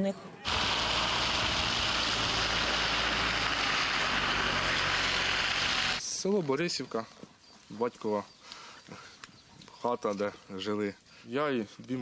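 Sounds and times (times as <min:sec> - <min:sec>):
loud rushing din of street clash: 0:00.5 - 0:06.0.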